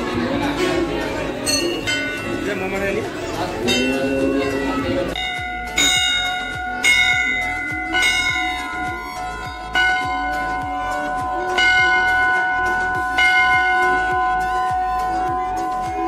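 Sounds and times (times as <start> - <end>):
large brass bell ringing: 1.4 - 16.0.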